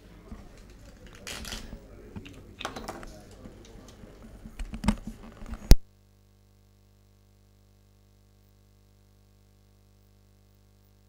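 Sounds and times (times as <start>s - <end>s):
faint murmuring voices: 0.0s - 5.6s
billiard balls clicking: 0.5s - 5.7s.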